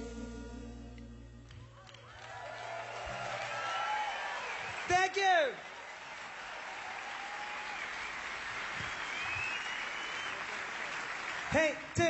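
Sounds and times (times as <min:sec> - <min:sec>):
audience applauding: 0:01.5 - 0:12.0.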